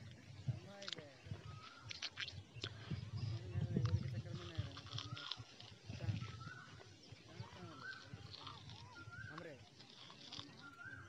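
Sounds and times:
bird calling: 0.6 - 11.0.

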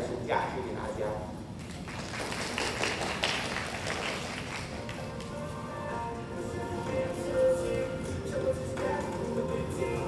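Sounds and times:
audience applauding: 1.6 - 5.4.

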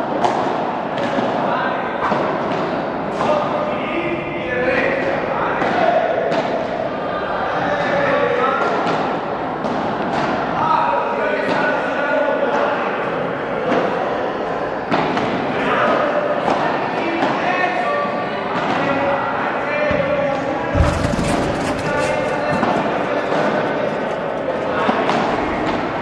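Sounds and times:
background talking: 10.5 - 26.0
ball bouncing off court and walls: 19.9 - 25.9
heavy thud: 20.7 - 24.6
ball struck by rackets: 20.8 - 25.8.

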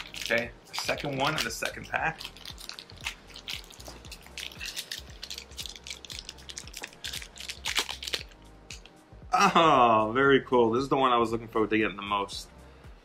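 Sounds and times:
packaging crinkles and clicks: 0.0 - 9.0
soft background music: 0.0 - 13.0.

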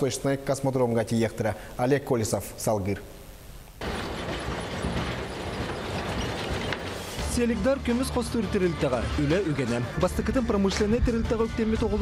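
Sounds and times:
machinery rumbling and rattling: 3.8 - 7.5.

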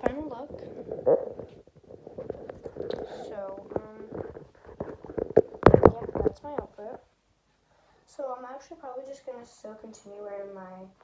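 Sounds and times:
rubbing and bumping on microphone: 0.0 - 7.1
girl's wordless vocal sound: 3.0 - 4.3.

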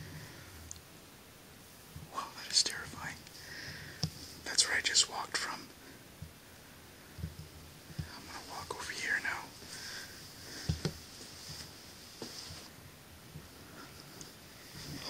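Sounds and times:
person whispering: 2.1 - 3.3, 4.4 - 5.8, 8.0 - 9.6.

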